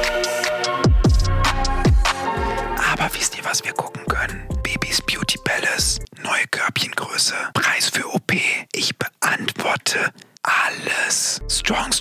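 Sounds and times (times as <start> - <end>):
man whispering into microphone: 2.8 - 12.0.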